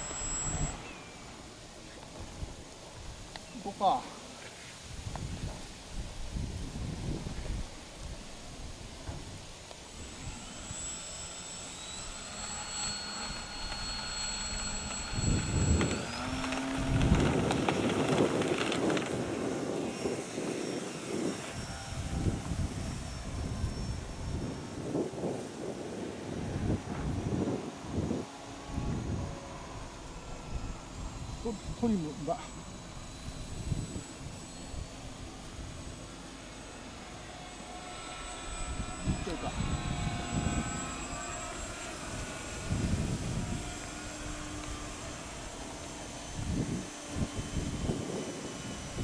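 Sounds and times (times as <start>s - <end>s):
model plane motor whining: 0.0s - 49.0s.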